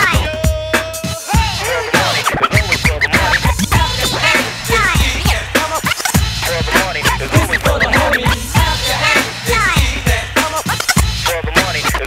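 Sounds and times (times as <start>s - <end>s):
hip hop beat: 0.0s - 12.0s
record scratching: 1.8s - 12.0s.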